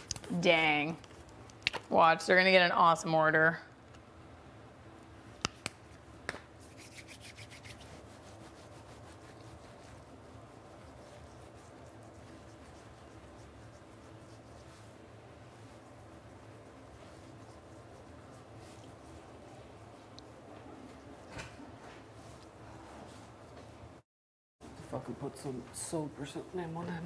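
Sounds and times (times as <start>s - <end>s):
low room hum: 0.0s - 24.0s.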